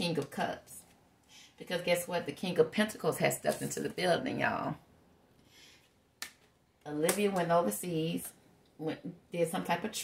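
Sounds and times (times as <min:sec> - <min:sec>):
woman speaking: 0:00.0 - 0:00.9, 0:01.6 - 0:04.8, 0:06.8 - 0:10.0.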